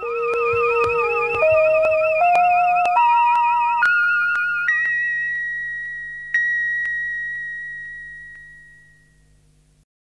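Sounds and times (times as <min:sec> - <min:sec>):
high electronic tone: 0:00.0 - 0:09.1.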